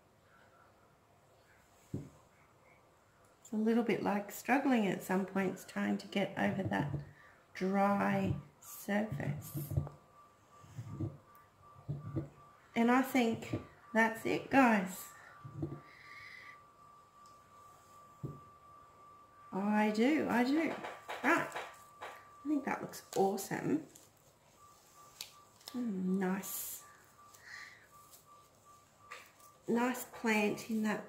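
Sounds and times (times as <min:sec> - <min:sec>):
faint high whine: 0:00.0 - 0:31.0
faint steady hum: 0:00.0 - 0:31.0
low hum-like voice: 0:25.7 - 0:26.9.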